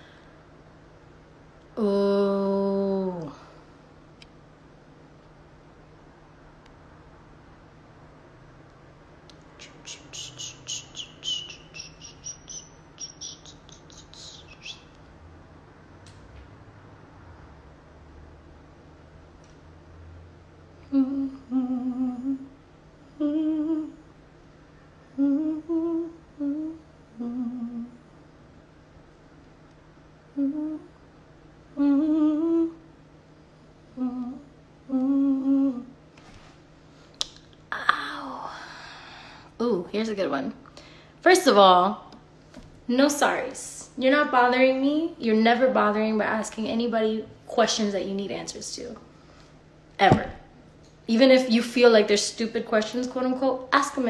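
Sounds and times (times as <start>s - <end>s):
woman humming: 1.8s - 3.5s, 9.6s - 12.6s, 20.8s - 24.1s, 25.1s - 28.0s, 30.3s - 31.0s, 31.8s - 32.9s, 33.9s - 36.0s, 37.7s - 38.8s
short high chirps: 9.6s - 14.8s.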